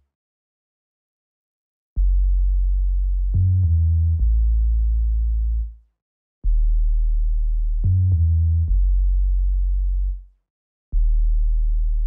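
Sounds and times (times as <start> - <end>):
synthesized bass notes: 2.0 - 5.7, 6.4 - 10.2, 11.0 - 12.0.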